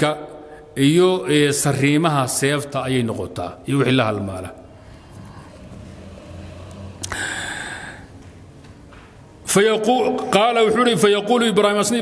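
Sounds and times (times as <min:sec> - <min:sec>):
low steady hum: 0:00.0 - 0:10.9.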